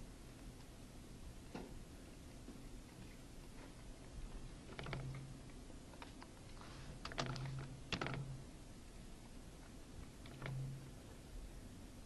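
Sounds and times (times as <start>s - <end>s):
computer keyboard typing: 7.0s - 8.3s.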